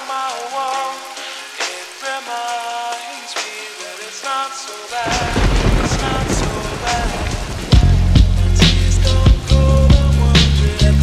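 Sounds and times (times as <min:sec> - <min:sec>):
slowed reverb-heavy music: 0:00.0 - 0:11.0
steady rain: 0:00.0 - 0:11.0
deep rumble of thunder: 0:05.1 - 0:10.1.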